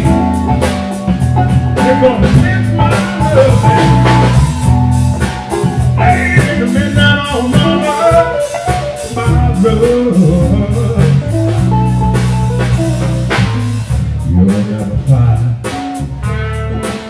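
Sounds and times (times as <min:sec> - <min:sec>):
drum kit: 0:00.0 - 0:17.0
electric guitar: 0:00.0 - 0:17.0
upright bass: 0:00.0 - 0:17.0
man singing: 0:01.7 - 0:04.4, 0:05.7 - 0:11.7, 0:14.2 - 0:16.0.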